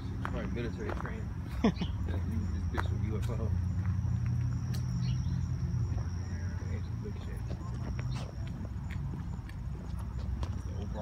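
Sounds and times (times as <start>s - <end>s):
footsteps on asphalt: 0.0s - 11.0s
steady low rumble: 0.0s - 11.0s.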